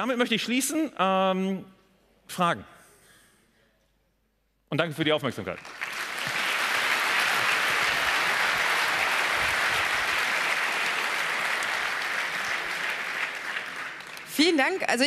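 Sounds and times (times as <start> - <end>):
audience applauding: 5.4 - 15.0.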